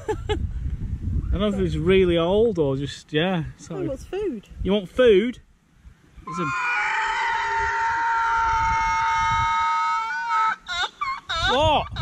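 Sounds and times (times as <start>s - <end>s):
sheep calling: 6.3s - 11.8s.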